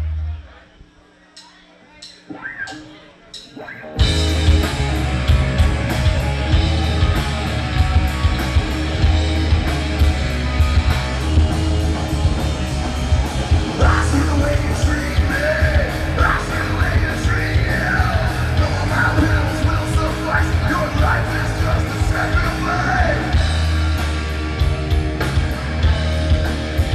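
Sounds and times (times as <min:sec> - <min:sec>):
heavy rock band playing: 0:02.3 - 0:26.9
person shouting vocals: 0:13.8 - 0:23.4.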